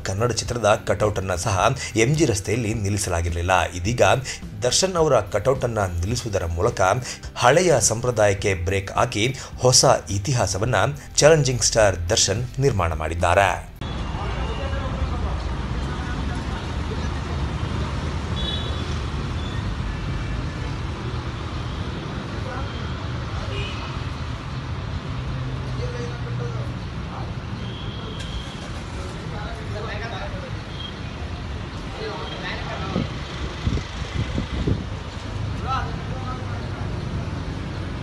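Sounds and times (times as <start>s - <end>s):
road traffic rumble: 0.0s - 38.0s.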